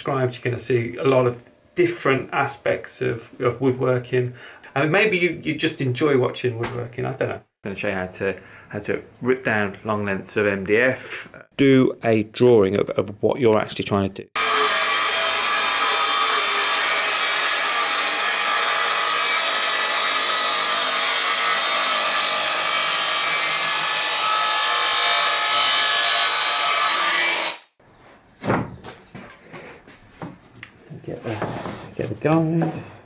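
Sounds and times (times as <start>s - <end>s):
circular saw cutting: 14.4s - 27.8s.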